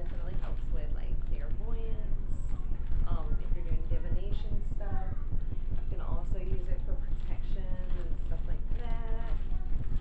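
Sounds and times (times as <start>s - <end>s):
woman talking: 0.0s - 9.7s
steady low hum: 0.0s - 10.0s.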